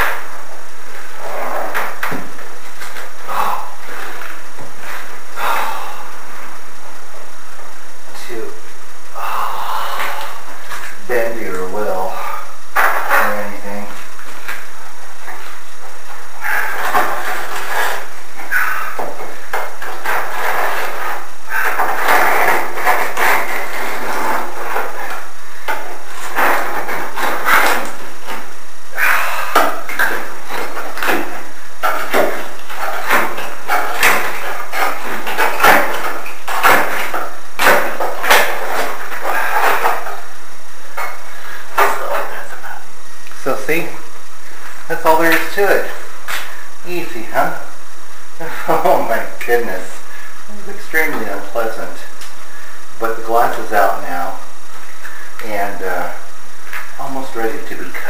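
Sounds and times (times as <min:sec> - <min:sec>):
indistinct voices: 0:01.2 - 0:02.2, 0:03.2 - 0:04.3, 0:05.3 - 0:06.4, 0:08.2 - 0:14.0.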